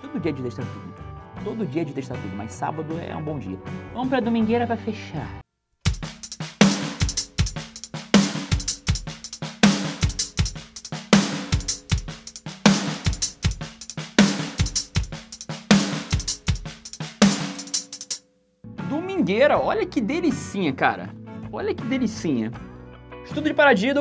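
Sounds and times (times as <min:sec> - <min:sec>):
drum kit playing a groove: 0:05.9 - 0:18.2.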